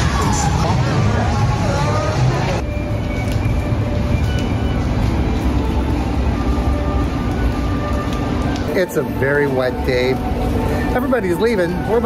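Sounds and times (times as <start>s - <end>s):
crowd voices: 0.0s - 3.4s.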